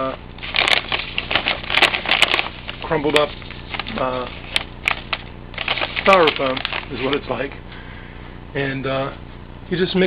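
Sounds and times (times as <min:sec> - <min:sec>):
hand scooping perlite in plastic bag: 0:00.4 - 0:07.4.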